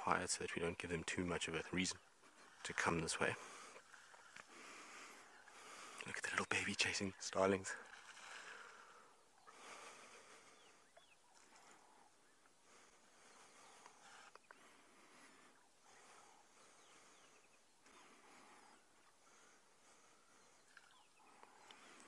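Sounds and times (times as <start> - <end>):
faint bird calls: 0.0 - 22.0.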